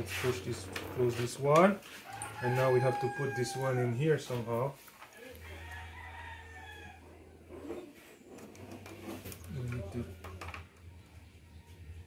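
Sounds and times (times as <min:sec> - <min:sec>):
rooster crowing faintly: 0:02.0 - 0:04.4, 0:05.2 - 0:08.0.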